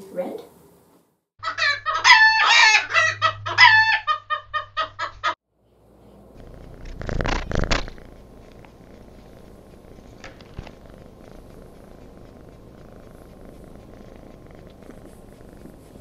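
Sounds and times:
cat purring: 0:06.2 - 0:16.0.

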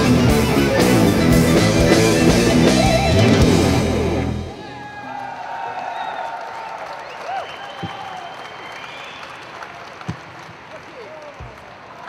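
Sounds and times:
live electric guitar music: 0:00.0 - 0:04.8
audience applauding: 0:02.0 - 0:12.0.

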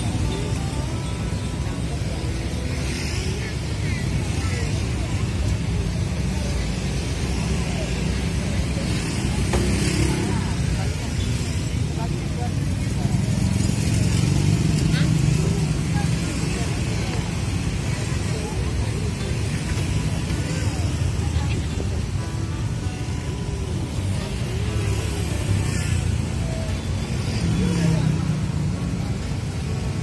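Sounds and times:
faint voices: 0:00.0 - 0:30.0.

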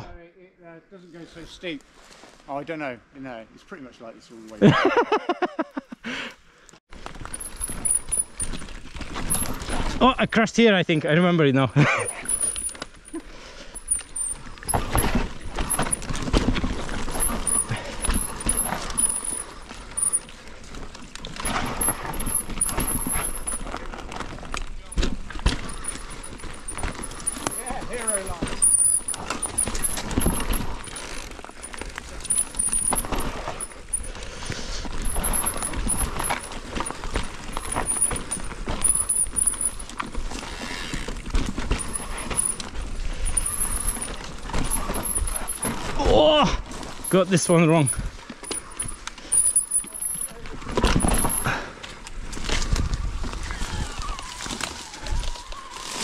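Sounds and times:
bike rattling over bumps: 0:06.9 - 0:55.2.

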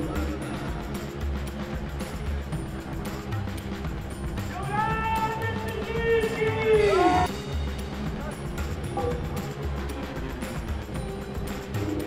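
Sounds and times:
music with repeating bass beat: 0:00.0 - 0:12.0
voice holding long note: 0:06.4 - 0:07.3.

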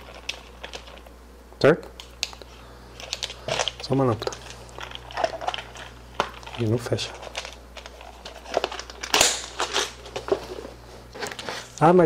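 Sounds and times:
rustling and scraping: 0:00.0 - 0:01.2, 0:02.5 - 0:11.8.

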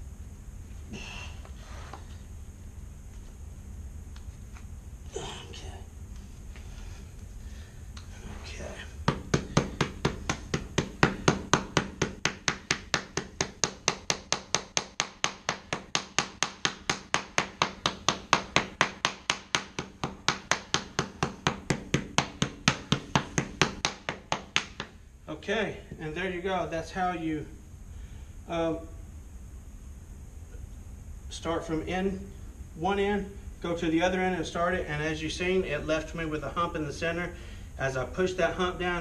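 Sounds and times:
mallet tapping rubber strip: 0:09.0 - 0:25.0.

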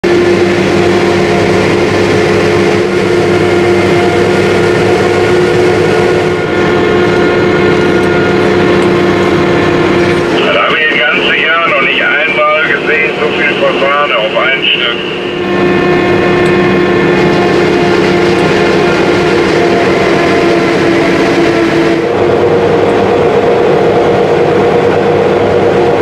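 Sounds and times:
forage harvester machine drone: 0:00.0 - 0:26.0
person speaking: 0:10.3 - 0:15.2.

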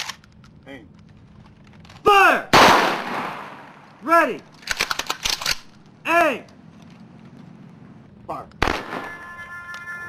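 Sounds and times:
person shouting a command: 0:02.0 - 0:02.5, 0:04.0 - 0:04.4, 0:06.0 - 0:06.5
rifle volley with echo: 0:02.5 - 0:03.8.

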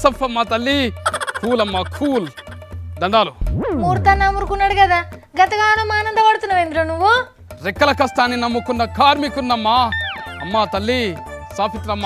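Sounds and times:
music with steady bass: 0:03.4 - 0:05.2.

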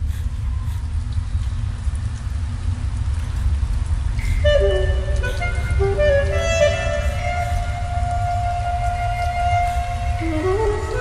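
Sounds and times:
faint hiss: 0:00.0 - 0:11.0
saxophone notes: 0:04.2 - 0:11.0.

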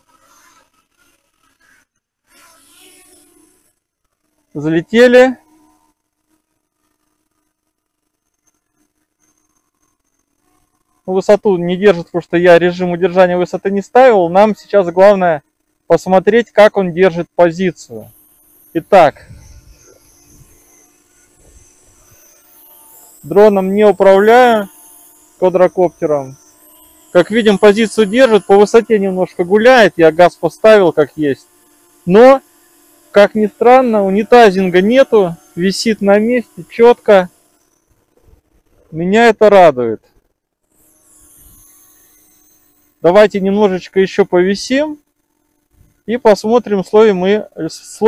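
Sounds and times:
quadcopter motors humming: 0:00.0 - 0:48.0.

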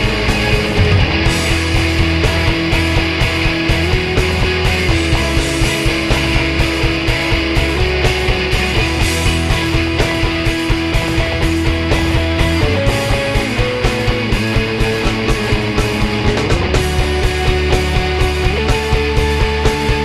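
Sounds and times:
drum kit beat: 0:00.0 - 0:20.0
electric guitar: 0:00.0 - 0:20.0
keyboard: 0:00.0 - 0:20.0.

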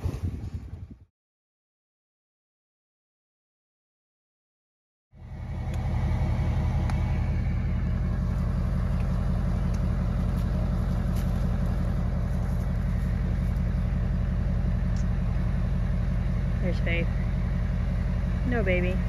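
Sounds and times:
vehicle engine idling: 0:05.2 - 0:19.0.

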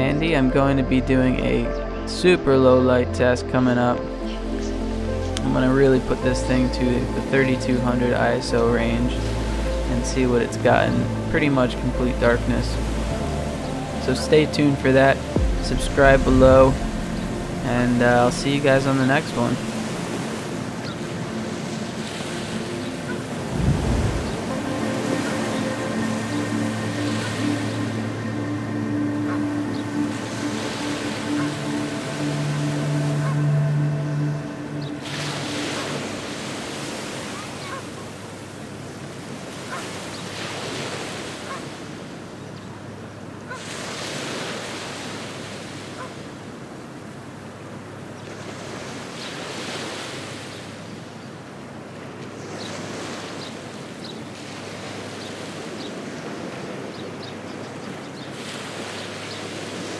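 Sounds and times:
held low musical notes: 0:00.0 - 0:38.1
ocean surf washing onto beach: 0:04.3 - 0:42.4.

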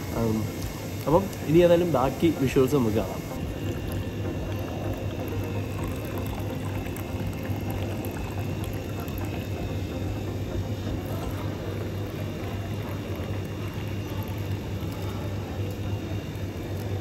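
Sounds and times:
steady low hum: 0:00.0 - 0:17.0
milky drink pouring and splashing: 0:00.1 - 0:17.0.

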